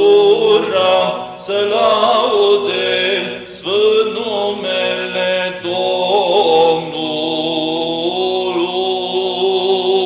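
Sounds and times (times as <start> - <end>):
ornamented chanting voice: 0.0 - 10.0.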